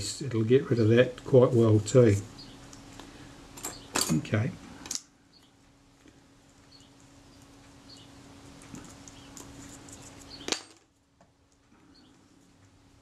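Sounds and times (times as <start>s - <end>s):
steady low hum: 0.0s - 13.0s
tweezers scratching on paper: 6.7s - 10.5s.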